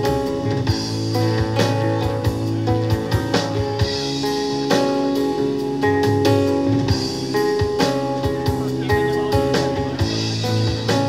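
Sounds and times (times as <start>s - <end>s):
drum kit: 0.0s - 11.0s
electric bass: 0.0s - 11.0s.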